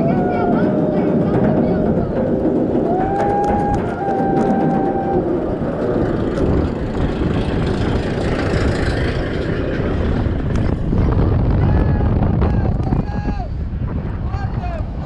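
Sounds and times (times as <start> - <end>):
coaster chain lift rumble and clicking: 0.0 - 11.6
wind noise on microphone: 0.0 - 15.0.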